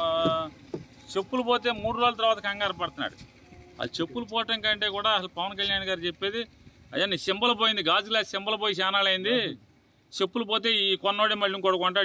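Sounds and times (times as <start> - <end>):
man speaking: 0.0 - 3.2, 3.8 - 12.0.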